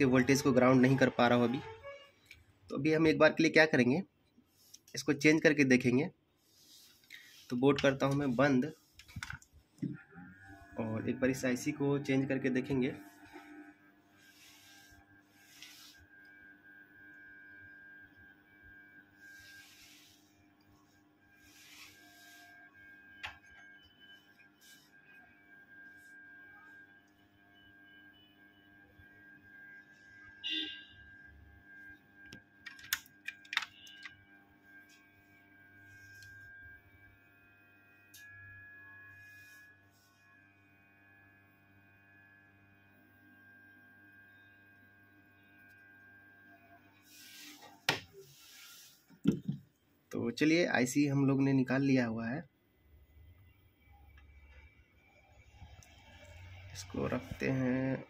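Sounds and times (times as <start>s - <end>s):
faint electrical whine: 0.0s - 58.0s.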